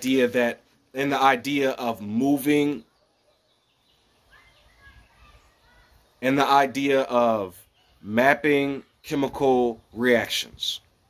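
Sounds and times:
faint bird chirps: 0:02.5 - 0:06.2, 0:07.5 - 0:08.1.

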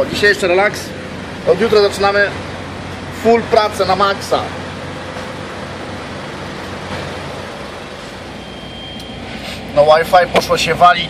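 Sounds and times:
heavy trucks droning: 0:00.0 - 0:11.0.

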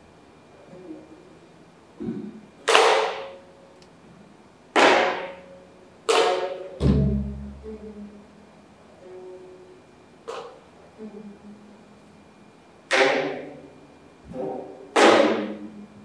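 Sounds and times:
barrel drum thuds: 0:06.1 - 0:07.5.

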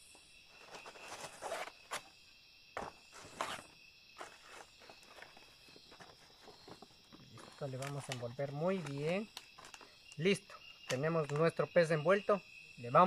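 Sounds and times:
night insects chirring: 0:00.0 - 0:13.0
leaves rustling and crinkling: 0:00.5 - 0:02.2, 0:02.8 - 0:10.3.

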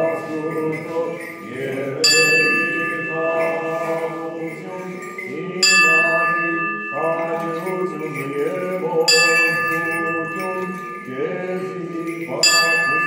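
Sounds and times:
bell ringing: 0:00.0 - 0:13.0
liturgical chanting: 0:00.0 - 0:13.0.

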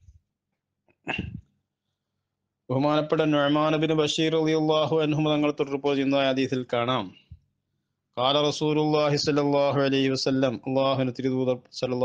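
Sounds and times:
man sneezing: 0:01.0 - 0:01.5.

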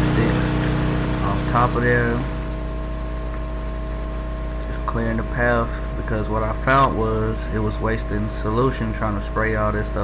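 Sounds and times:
machine hum with steady tones: 0:00.0 - 0:10.0.

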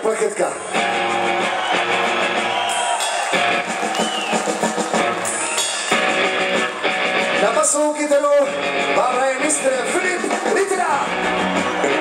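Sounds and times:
live rock band playing: 0:00.6 - 0:12.0
electric guitar: 0:00.7 - 0:12.0.

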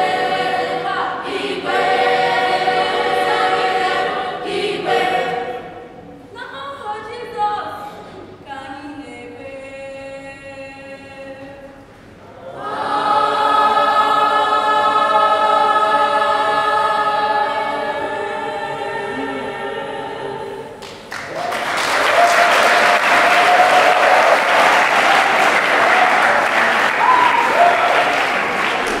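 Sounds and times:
children's choir singing: 0:00.0 - 0:06.3, 0:12.2 - 0:21.1, 0:21.9 - 0:29.0
audience applauding: 0:20.8 - 0:29.0.

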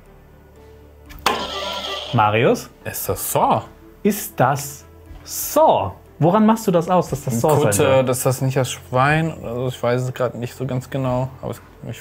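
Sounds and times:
faint background music: 0:00.0 - 0:12.0
quiz buzzer: 0:01.3 - 0:02.2.

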